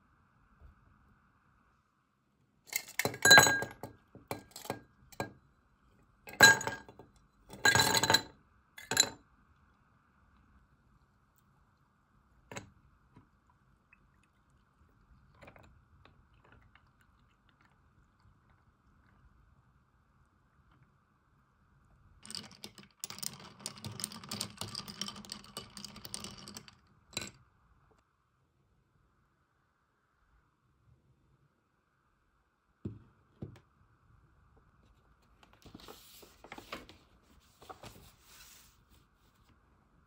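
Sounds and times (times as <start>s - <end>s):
ice clinking in glass: 2.7s - 3.9s.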